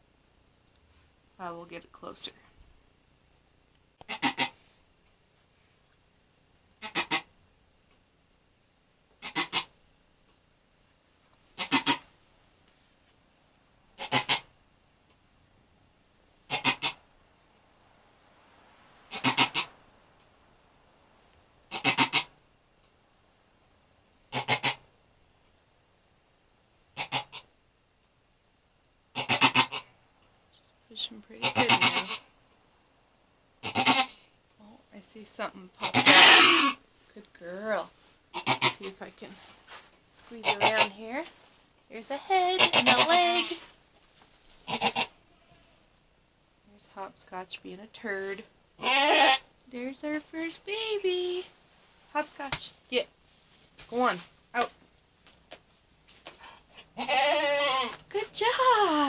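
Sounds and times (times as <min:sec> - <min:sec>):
goat crying out: 0:33.6 - 0:34.2, 0:35.8 - 0:36.8, 0:42.6 - 0:43.6, 0:44.7 - 0:45.8, 0:48.8 - 0:49.5, 0:57.0 - 0:58.0.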